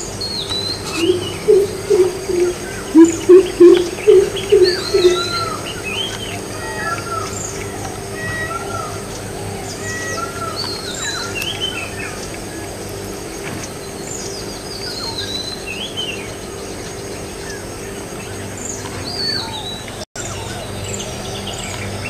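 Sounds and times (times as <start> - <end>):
deep resonant bird hooting: 0.0 - 21.5
birds chirping and whistling: 0.0 - 22.0.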